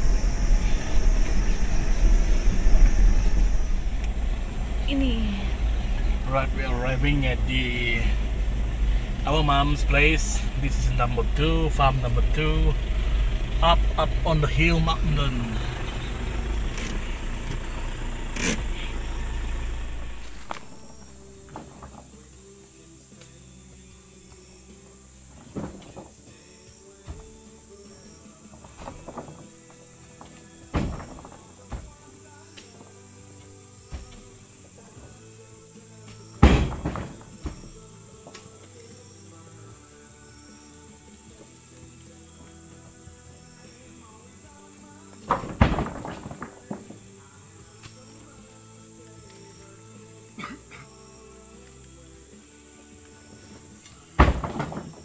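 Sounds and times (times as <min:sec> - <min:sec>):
loud low rumble: 0:00.0 - 0:21.3
background music: 0:00.0 - 0:55.0
heavy thuds into truck bed: 0:25.3 - 0:27.6, 0:28.4 - 0:32.3, 0:33.8 - 0:35.1, 0:36.3 - 0:38.3, 0:45.2 - 0:47.2, 0:54.1 - 0:55.0.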